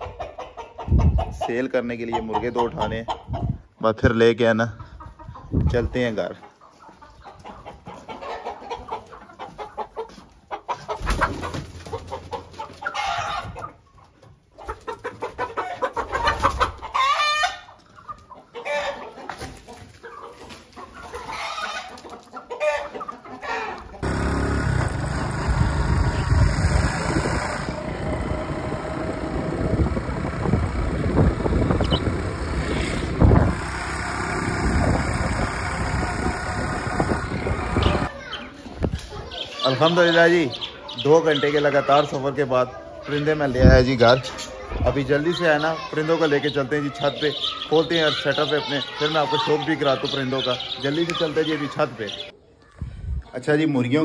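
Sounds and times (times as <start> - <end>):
chickens clucking: 0.0 - 54.0
wind rushing on microphone: 0.9 - 1.4, 2.8 - 3.7, 5.3 - 6.0, 24.9 - 33.7.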